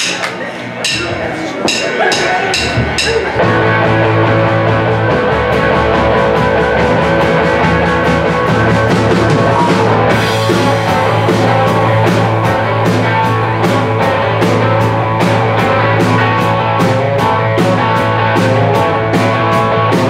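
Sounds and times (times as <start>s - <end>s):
rock band playing: 0.0s - 20.0s
drumstick count-in hits: 0.8s - 3.4s.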